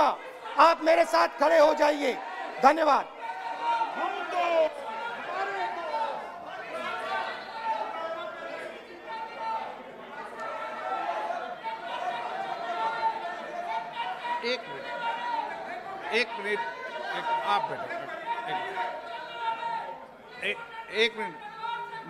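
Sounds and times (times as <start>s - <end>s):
many people talking and calling out: 0.0s - 22.0s.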